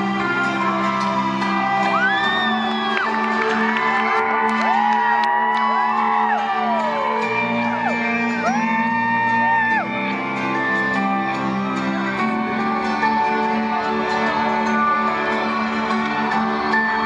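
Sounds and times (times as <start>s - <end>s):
crowd whooping and whistling: 0.0s - 0.9s, 1.8s - 11.0s.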